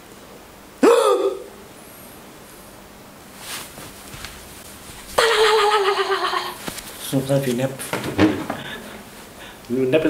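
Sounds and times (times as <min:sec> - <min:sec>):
man's sharp vocal cry: 0:00.8 - 0:01.6.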